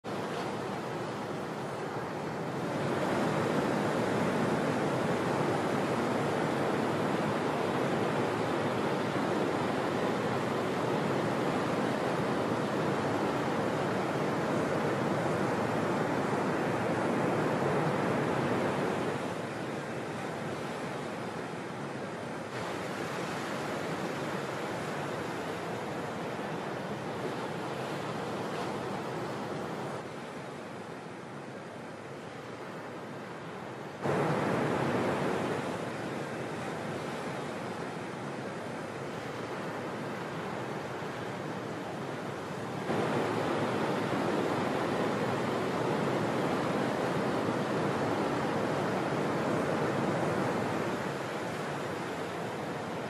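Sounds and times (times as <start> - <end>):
ocean surf breaking: 0.0 - 53.0.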